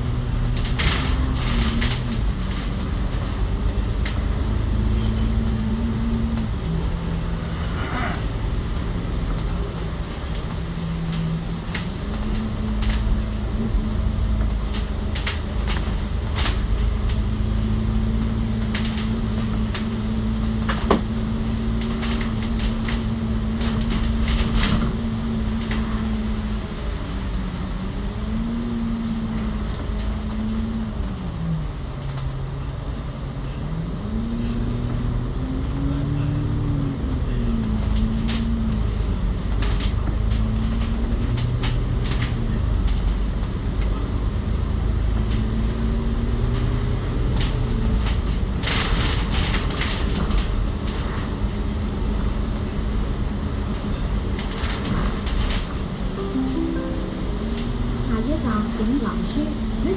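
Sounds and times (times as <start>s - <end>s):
bus engine and driveline: 0.0s - 59.9s.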